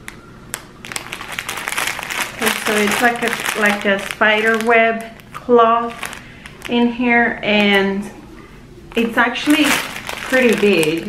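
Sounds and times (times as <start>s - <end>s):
plastic packaging crinkling: 0.5s - 8.0s, 8.9s - 11.0s.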